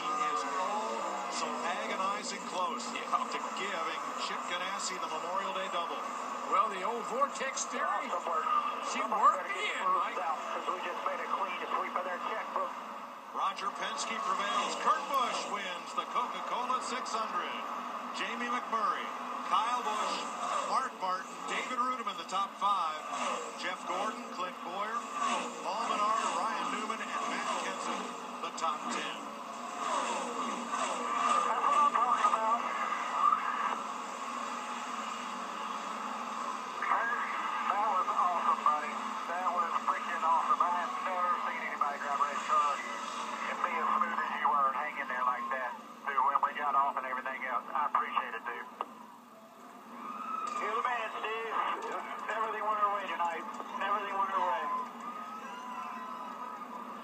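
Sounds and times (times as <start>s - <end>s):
two-way radio chatter: 0.0s - 33.9s, 36.6s - 49.0s, 50.6s - 54.8s
muffled tv broadcast voices: 0.0s - 57.0s.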